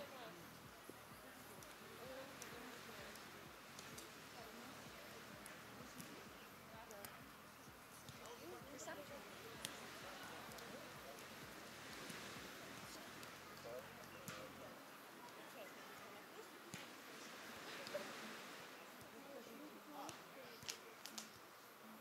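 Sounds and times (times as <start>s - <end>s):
distant indistinct voices: 0.0s - 22.0s.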